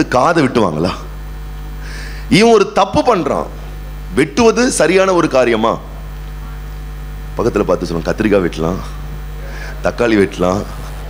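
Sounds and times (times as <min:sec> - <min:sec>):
man speaking: 0:00.0 - 0:01.1, 0:02.3 - 0:06.7, 0:07.4 - 0:11.0
low electrical mains hum: 0:00.0 - 0:11.0.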